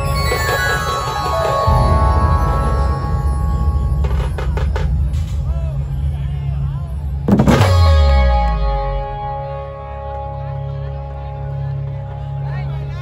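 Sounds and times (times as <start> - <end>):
band music through sound system: 0.0 - 5.9, 7.2 - 13.0
drum hits: 0.4 - 5.5, 7.3 - 8.3
heavy boom with falling bass: 1.6 - 6.2, 7.2 - 9.6.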